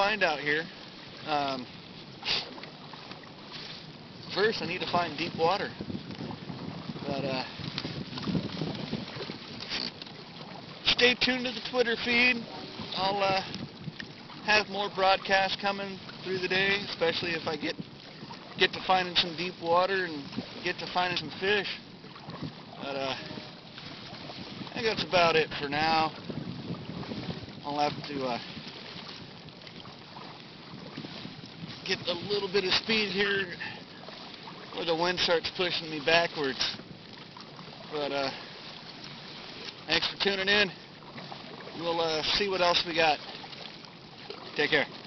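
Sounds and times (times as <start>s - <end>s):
wind noise on microphone: 0.0s - 43.2s
paddle splashing in water: 0.0s - 45.0s.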